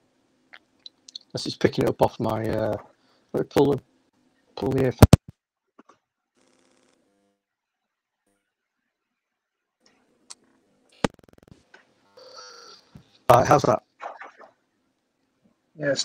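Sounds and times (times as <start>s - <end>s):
audio jack clicks: 11.0s - 11.6s.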